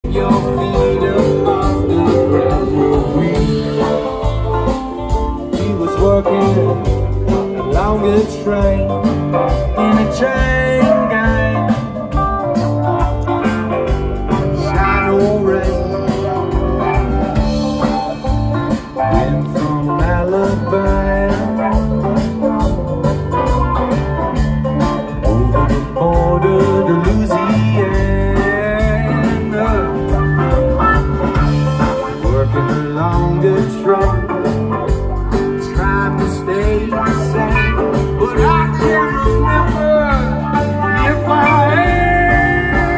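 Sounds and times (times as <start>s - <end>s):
funk band playing: 0.0s - 42.9s.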